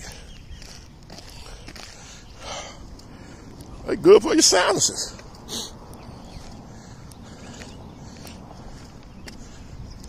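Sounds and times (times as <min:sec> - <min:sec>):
low rumble from wind and handling: 0:00.0 - 0:10.0.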